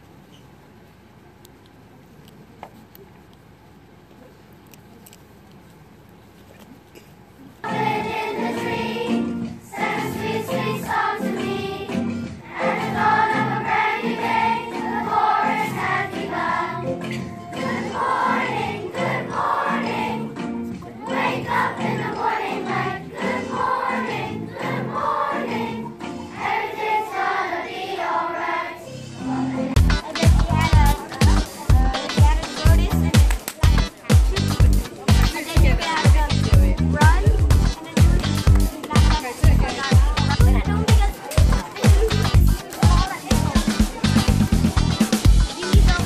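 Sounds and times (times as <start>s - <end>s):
children's choir singing: 7.6s - 32.6s.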